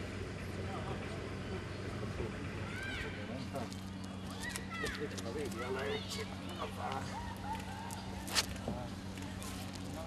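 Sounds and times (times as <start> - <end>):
distant voices: 0.0 - 10.0
steady low hum: 0.0 - 10.0.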